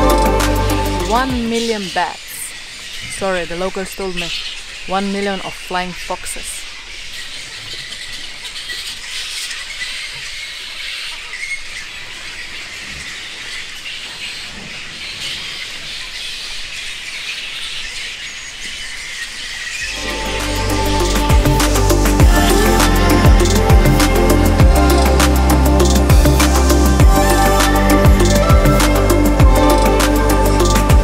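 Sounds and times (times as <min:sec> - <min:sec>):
electronic music with heavy beat: 0:00.0 - 0:02.0, 0:19.9 - 0:31.0
flying foxes calling: 0:00.0 - 0:31.0.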